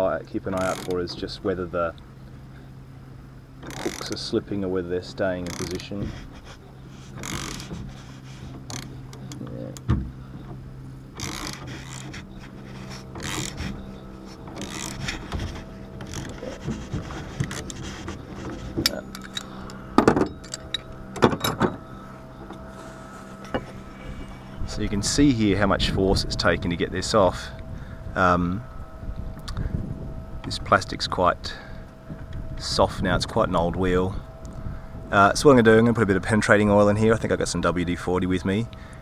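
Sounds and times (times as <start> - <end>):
sharp knocks and creaks of puller: 3.6 - 4.3, 5.4 - 21.8.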